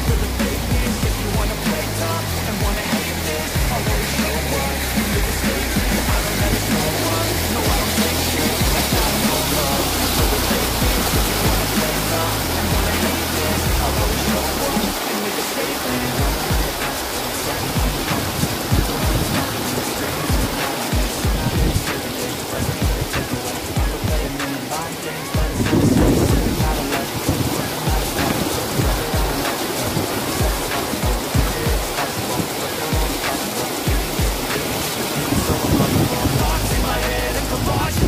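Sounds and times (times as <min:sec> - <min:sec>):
rap beat with bass line: 0:00.0 - 0:38.0
waterfall rushing over rock: 0:00.0 - 0:38.0.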